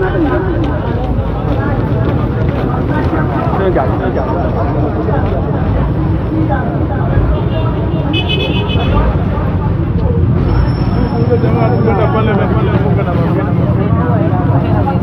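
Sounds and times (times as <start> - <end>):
crowd talking and calling out: 0.0 - 15.0
traffic noise: 0.0 - 15.0
vehicle horn: 7.4 - 9.0.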